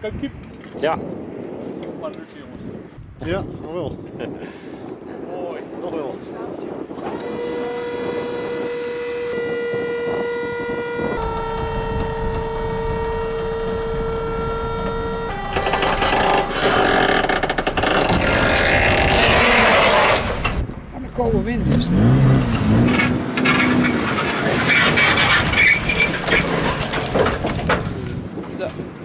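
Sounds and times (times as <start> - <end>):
hydraulic pump whining: 7.0 - 20.7
branches sliding off trailer bed: 22.4 - 28.0.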